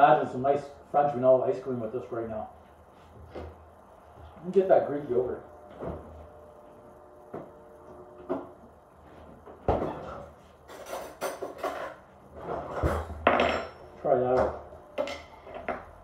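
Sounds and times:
cutlery and dishes clinking: 10.7 - 12.0.

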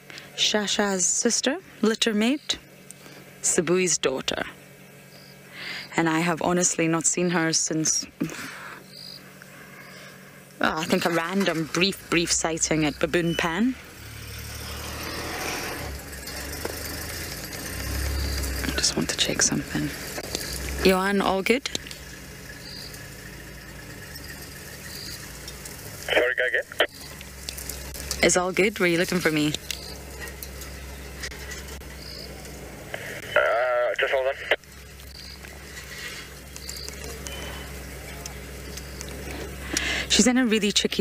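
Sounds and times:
low steady hum: 0.0 - 41.0
vehicle engine running at low revs: 0.0 - 41.0.

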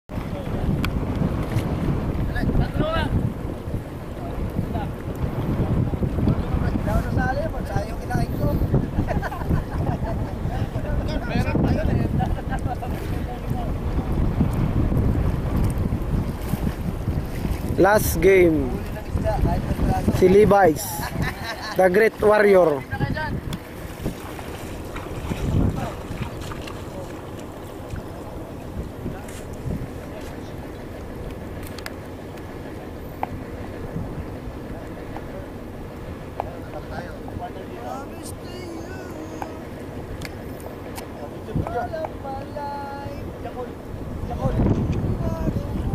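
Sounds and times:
wind buffeting microphone: 0.1 - 45.9
distant voices calling out: 34.3 - 45.9.

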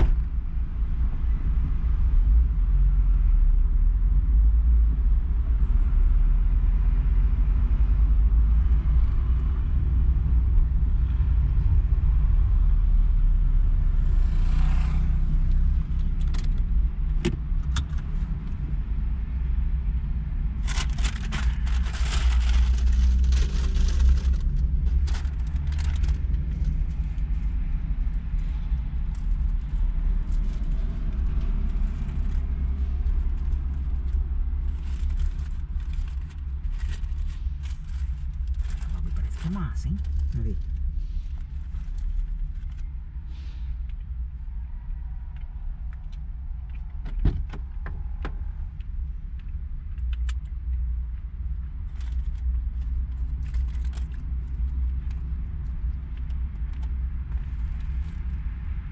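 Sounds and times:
car engine and tyres rumbling: 0.0 - 58.9.

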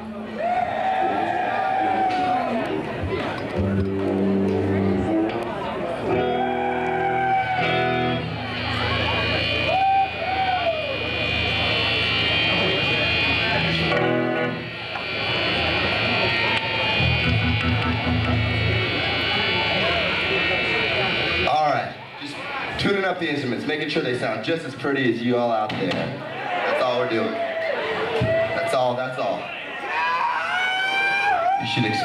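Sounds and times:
crowd shouting: 0.0 - 23.2, 26.2 - 32.0
electric guitars being tuned: 0.0 - 24.8.

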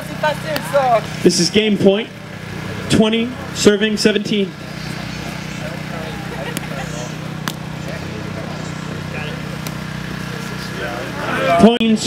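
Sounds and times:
faint chatter of onlookers: 0.0 - 12.0
steady low hum: 0.0 - 12.0.

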